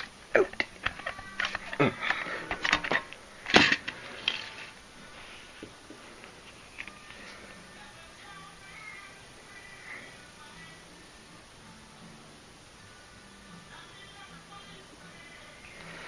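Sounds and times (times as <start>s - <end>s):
plastic case clicks and rustles: 0.0s - 4.5s.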